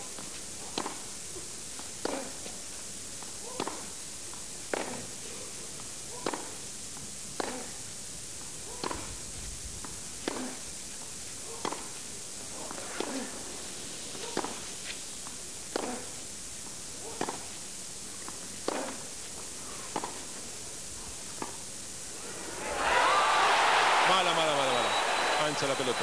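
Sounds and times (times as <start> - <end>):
tennis ball hits: 14.3 - 14.6, 18.6 - 19.0
crowd shouting and whistling: 22.2 - 26.0.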